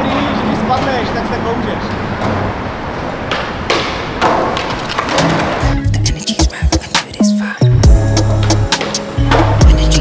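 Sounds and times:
skateboard wheels rolling on concrete: 0.0 - 5.9, 8.2 - 10.0
music with deep bass beat: 5.6 - 10.0.

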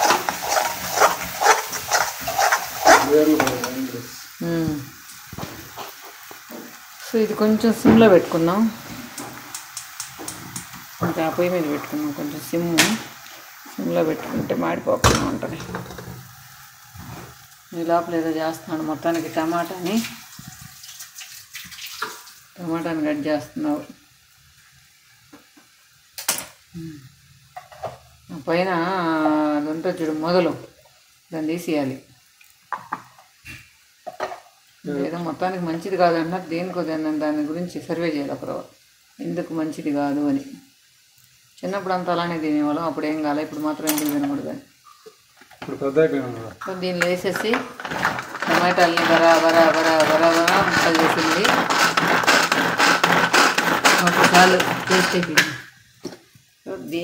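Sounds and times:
spoon scraping a metal pan: 0.0 - 3.6, 47.0 - 55.6
food sizzling in a pan: 0.0 - 57.0.

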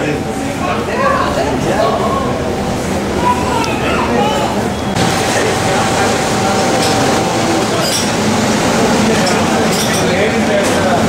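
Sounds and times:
people talking: 0.0 - 11.0
kitchen machinery rushing: 4.5 - 11.0.

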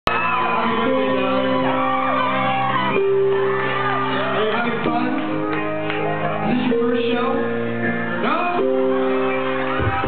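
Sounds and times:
live band playing: 0.1 - 10.0.

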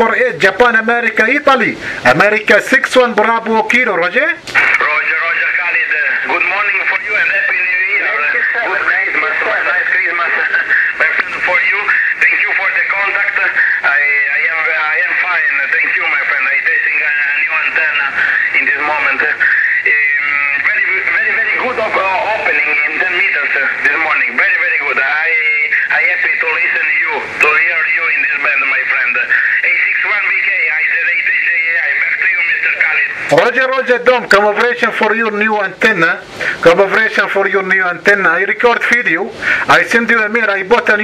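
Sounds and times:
man talking over radio: 0.0 - 41.0
radio band noise: 0.0 - 41.0.

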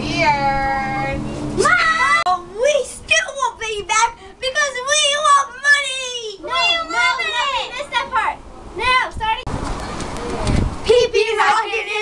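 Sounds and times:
child's voice: 1.6 - 9.5, 10.8 - 12.0
wind rushing on microphone: 8.7 - 11.3.

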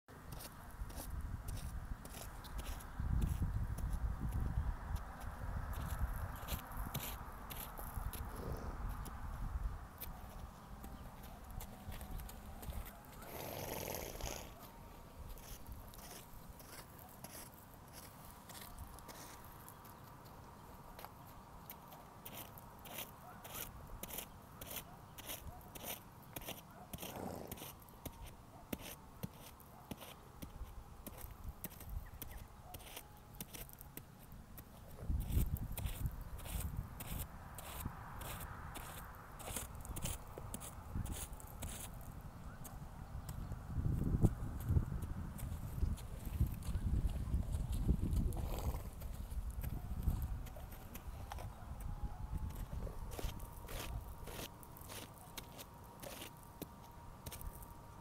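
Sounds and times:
hooves on packed dirt: 0.1 - 58.0
horse tearing grass and chewing: 10.9 - 19.8, 22.2 - 32.0, 45.4 - 51.6, 52.4 - 57.8.

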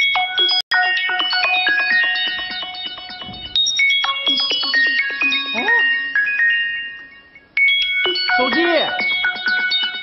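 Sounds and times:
phone ringtone melody: 0.0 - 10.0.

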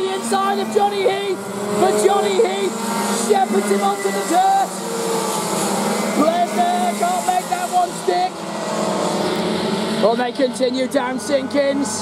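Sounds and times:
racing kart engines droning: 0.0 - 12.0.

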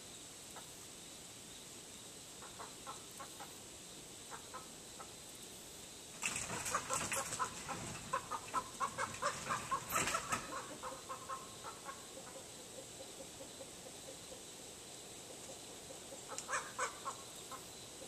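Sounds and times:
chickens clucking: 2.4 - 3.6, 6.2 - 18.0.

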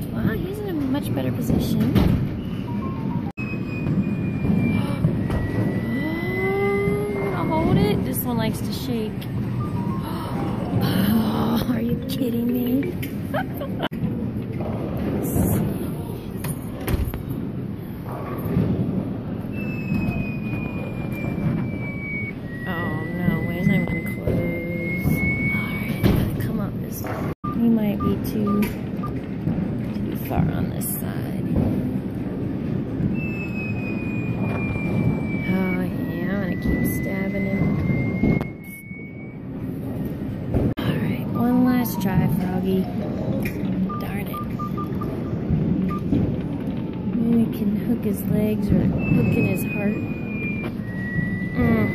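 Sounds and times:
falling and rising electronic tone: 2.7 - 8.0.

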